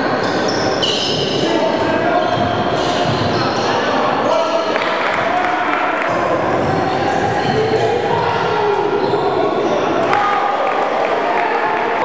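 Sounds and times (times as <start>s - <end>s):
voices echoing in hall: 0.0s - 12.0s.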